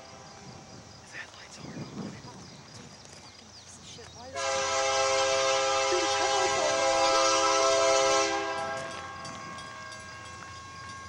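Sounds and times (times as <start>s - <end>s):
faint outdoor ambience: 0.0s - 11.0s
locomotive air horn chord: 4.4s - 10.0s.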